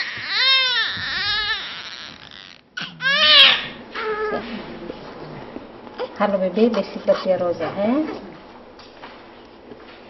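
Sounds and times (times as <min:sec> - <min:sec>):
newborn baby crying: 0:00.0 - 0:04.4, 0:05.9 - 0:06.2.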